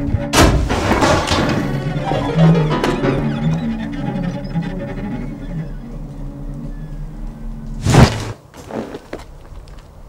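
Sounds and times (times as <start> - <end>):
dark film music: 0.0 - 7.9.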